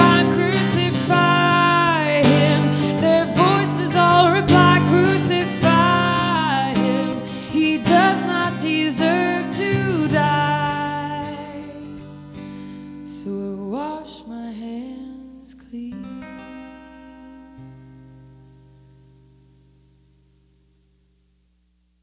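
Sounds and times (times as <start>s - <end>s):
woman singing: 0.0s - 12.2s, 13.0s - 17.9s
strummed acoustic guitar: 0.0s - 15.0s, 15.8s - 20.5s.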